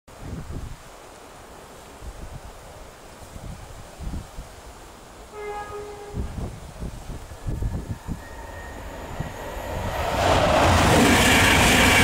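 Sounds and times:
wind buffeting microphone: 0.1s - 0.9s, 3.2s - 4.6s, 6.0s - 12.0s
train horn blasts: 5.3s - 6.6s.

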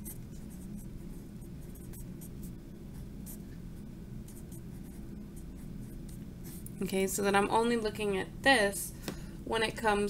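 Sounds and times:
pen writing on paper: 0.0s - 2.5s.

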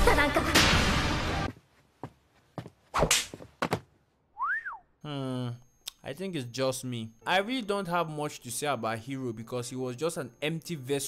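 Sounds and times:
slap to the face: 3.0s - 3.4s
rising and falling whistle: 4.4s - 4.9s.

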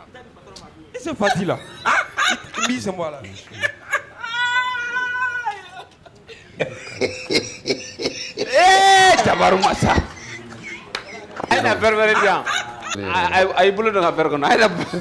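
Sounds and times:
people talking and laughing: 0.0s - 15.0s.

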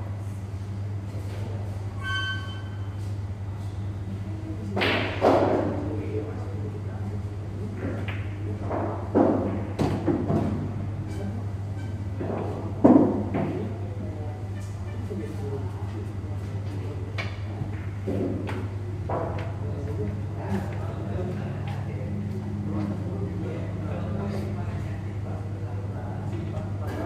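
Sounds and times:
steady low hum: 0.0s - 27.0s
pool balls knocking: 12.2s - 13.7s.

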